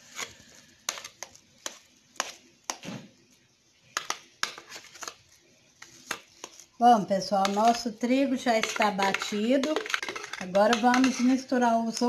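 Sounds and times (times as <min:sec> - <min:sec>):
spoon scraping jar and bowl: 0:07.3 - 0:12.0.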